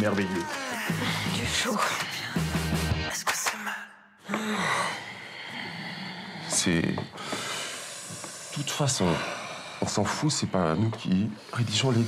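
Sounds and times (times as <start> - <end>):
person gasping: 0.5 - 1.4, 4.2 - 8.4
breathy exhale: 4.3 - 9.9.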